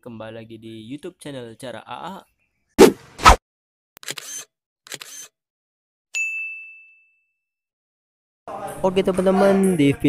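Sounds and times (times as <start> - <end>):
high bright ding: 6.2 - 7.4.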